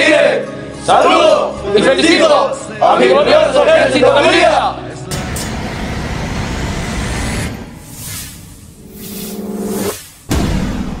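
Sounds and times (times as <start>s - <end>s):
music: 0.0s - 7.9s, 10.2s - 11.0s
sudden low hit: 10.3s - 11.0s.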